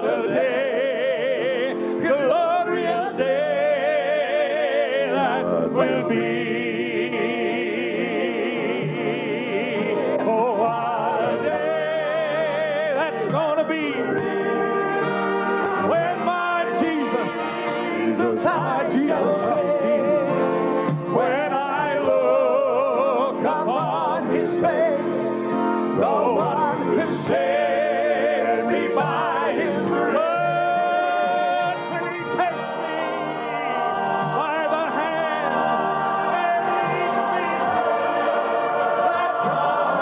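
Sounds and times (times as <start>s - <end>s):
male vocal quartet singing in harmony: 0.0s - 40.0s.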